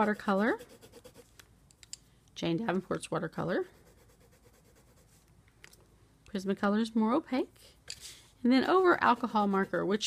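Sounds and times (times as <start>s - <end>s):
colored pencil scratching on paper: 0.0s - 1.3s, 3.6s - 5.2s, 8.6s - 10.0s.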